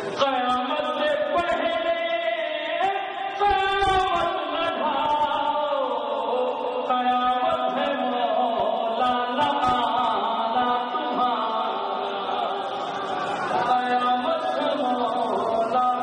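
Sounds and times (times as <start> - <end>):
man chanting devotional poetry: 0.0 - 12.7, 13.5 - 16.0.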